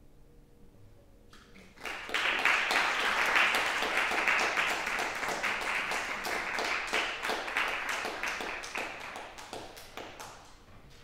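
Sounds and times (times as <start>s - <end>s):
audience clapping: 1.4s - 10.7s.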